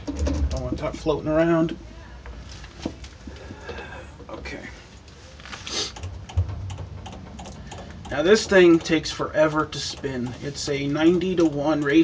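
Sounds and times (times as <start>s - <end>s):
light irregular clicks: 5.9s - 9.0s, 11.3s - 12.0s
sharp knock: 6.0s - 7.4s
low hum: 6.0s - 9.4s.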